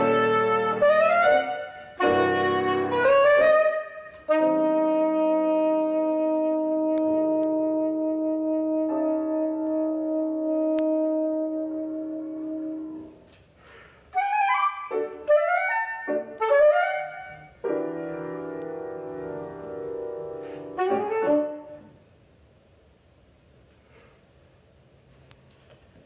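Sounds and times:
piano playing: 0.0s - 13.3s, 14.2s - 22.0s
soprano saxophone: 0.0s - 13.3s, 14.1s - 21.9s.

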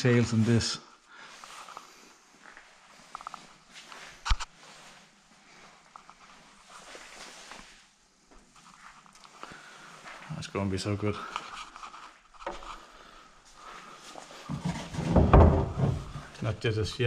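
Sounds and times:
quiet footsteps: 1.2s - 16.5s.

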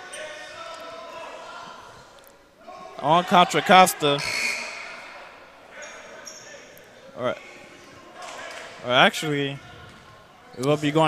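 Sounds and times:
overlapping voices in echoing hall: 0.0s - 11.0s.

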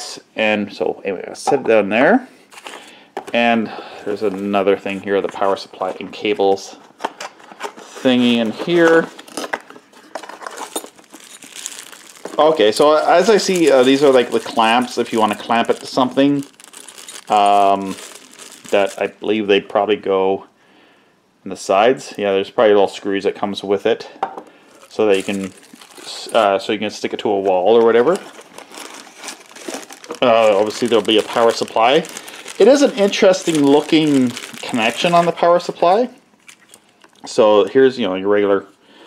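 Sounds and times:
plastic packaging crinkling: 2.5s - 3.4s, 4.1s - 19.4s, 24.7s - 37.4s.

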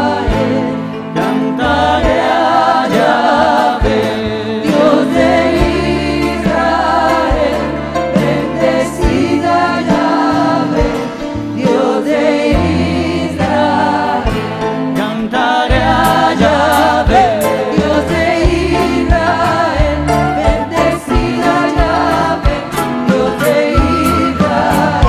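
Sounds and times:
choir singing worship song: 0.0s - 25.0s.

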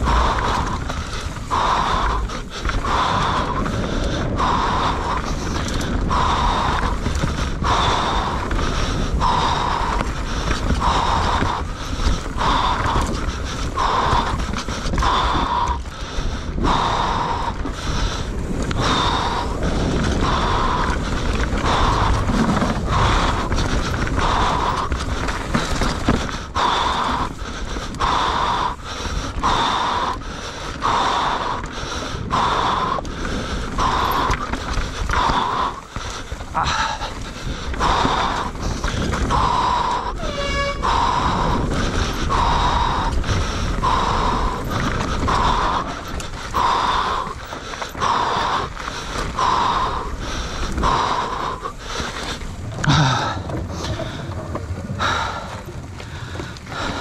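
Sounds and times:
bike rumbling on dirt trail: 0.0s - 57.0s
rider panting hard: 0.0s - 57.0s.

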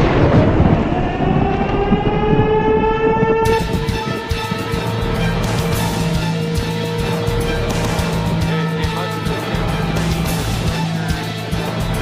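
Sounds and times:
thunderclap: 0.0s - 10.9s
warning siren wailing: 0.0s - 12.0s
music with a beat: 3.5s - 12.0s.

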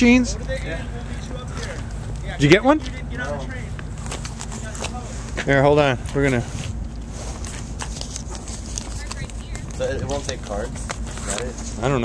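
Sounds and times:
low steady rumble: 0.0s - 12.0s
footsteps on asphalt: 1.4s - 11.9s.

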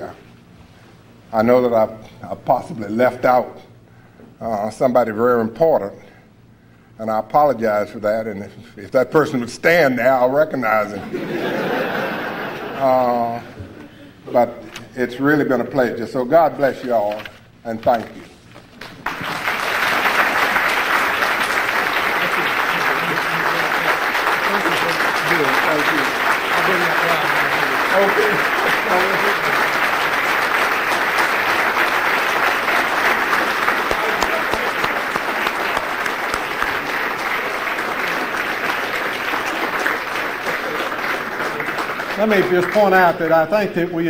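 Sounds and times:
audience applauding: 18.7s - 43.5s
voices: 22.0s - 30.0s.

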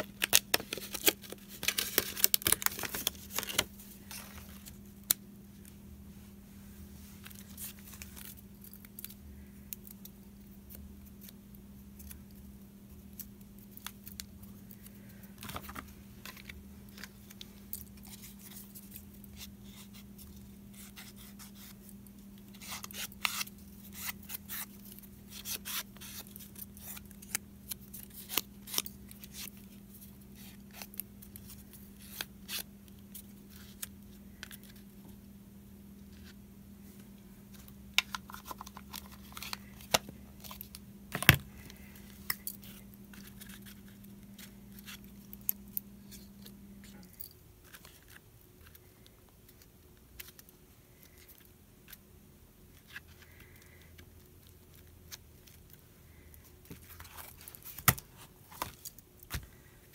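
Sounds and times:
paper handled and torn: 0.0s - 5.2s
faint low hum: 0.0s - 59.9s.

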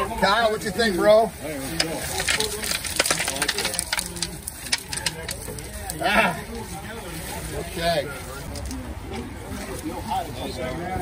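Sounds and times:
pebbles clattering onto stones: 1.7s - 6.1s.

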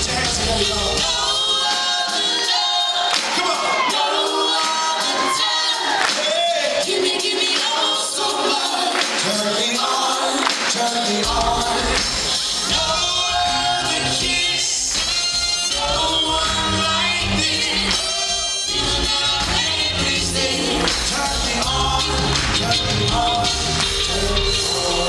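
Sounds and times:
live band with sung vocals: 0.0s - 25.0s.

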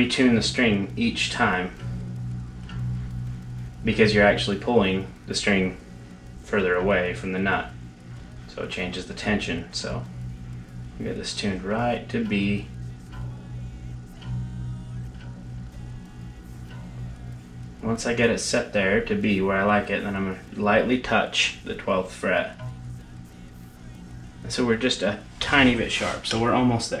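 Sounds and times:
low electric guitar note ringing: 0.0s - 27.0s.

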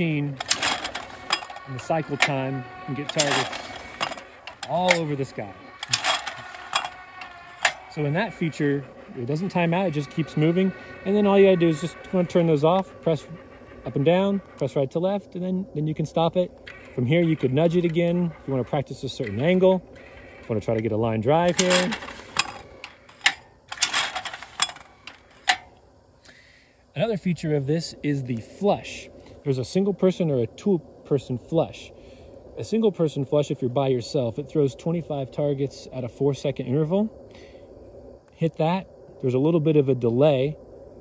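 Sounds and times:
gear motors whining: 0.0s - 26.0s
clay target trap clicking: 0.2s - 8.1s.

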